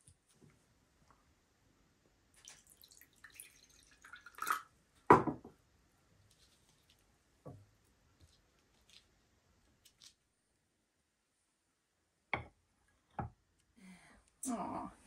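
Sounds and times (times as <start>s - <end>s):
water trickling into glass bowl: 2.4s - 4.7s
glass knocking on wooden table: 5.1s - 5.5s.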